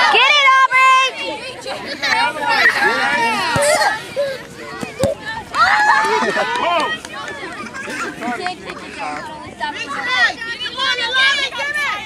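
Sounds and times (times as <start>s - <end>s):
voices calling and shouting: 0.0s - 12.0s.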